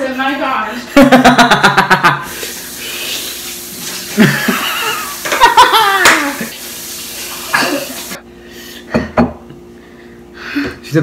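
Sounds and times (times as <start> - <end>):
man laughing loudly: 0.9 - 2.3, 4.1 - 6.5, 7.5 - 8.1
water running from faucet: 2.3 - 8.2.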